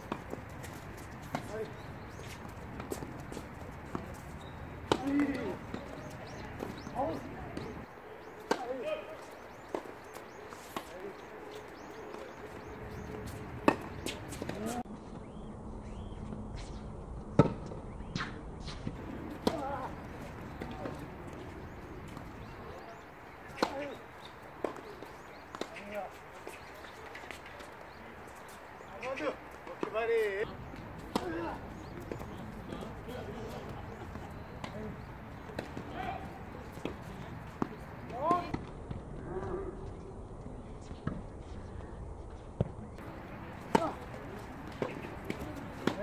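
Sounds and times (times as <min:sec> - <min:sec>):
racket hitting tennis ball: 0:00.0 - 0:14.8, 0:18.2 - 0:27.8, 0:30.8 - 0:32.9, 0:33.6 - 0:36.1, 0:43.0 - 0:46.0
footsteps and shoe scuffs on court: 0:00.0 - 0:15.2, 0:15.8 - 0:16.9, 0:18.2 - 0:38.5, 0:42.3 - 0:46.0
faint voices: 0:00.1 - 0:14.9, 0:19.0 - 0:40.9, 0:43.0 - 0:46.0.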